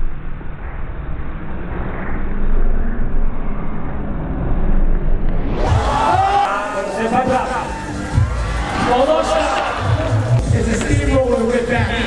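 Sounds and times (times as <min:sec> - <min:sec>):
low muffled rumble of event ambience: 0:00.0 - 0:12.0.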